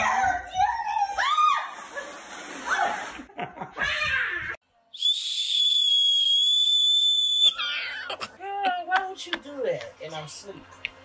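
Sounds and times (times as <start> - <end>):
people laughing: 3.0 - 3.9
high-pitched whistle blast: 4.9 - 7.5.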